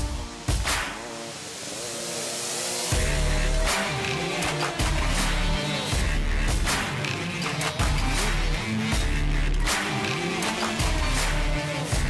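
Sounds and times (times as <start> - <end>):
background music with heavy bass beat: 0.0 - 12.0.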